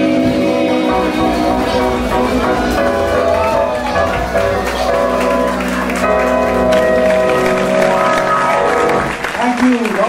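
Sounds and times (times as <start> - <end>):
live band playing song: 0.0 - 9.7
applause: 3.0 - 10.0.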